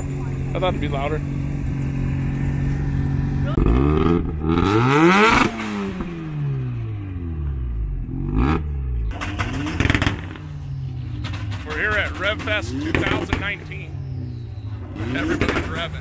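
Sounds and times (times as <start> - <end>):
car engine revving: 0.0 - 16.0.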